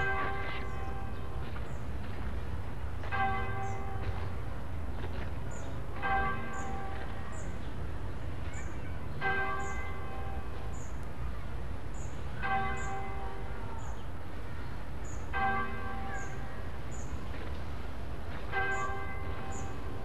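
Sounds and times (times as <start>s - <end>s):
church bell tolling: 0.0s - 1.6s, 3.1s - 4.4s, 5.7s - 7.6s, 8.6s - 10.8s, 12.4s - 13.8s, 15.2s - 17.2s, 18.3s - 20.0s.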